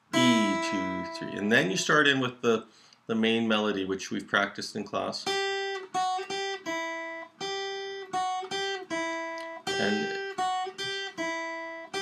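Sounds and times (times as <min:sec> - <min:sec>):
acoustic guitar picked notes: 0:00.0 - 0:03.8, 0:05.2 - 0:12.0.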